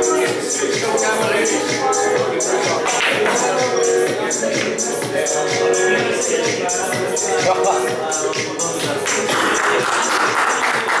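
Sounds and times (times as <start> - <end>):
people clapping: 2.8 - 3.5, 8.3 - 11.0.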